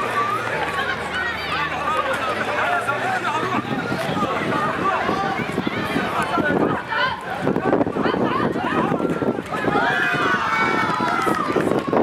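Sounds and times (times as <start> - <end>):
running feet on asphalt: 0.0 - 12.0
young voices shouting: 0.0 - 12.0.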